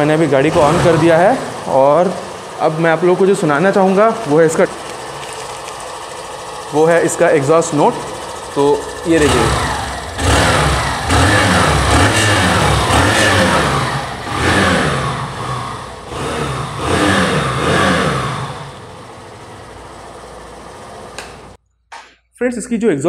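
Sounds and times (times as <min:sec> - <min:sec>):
motorcycle engine idling: 0:00.0 - 0:21.6
motorcycle engine revving: 0:00.0 - 0:21.6.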